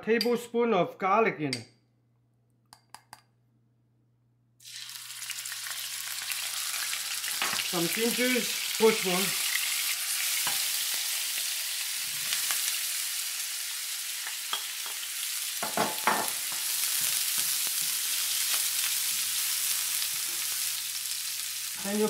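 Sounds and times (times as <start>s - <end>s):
onions sizzling in hot oil: 4.6s - 22.0s
spoon knocking and scraping pan: 7.4s - 7.7s, 10.4s - 10.7s, 14.3s - 18.0s.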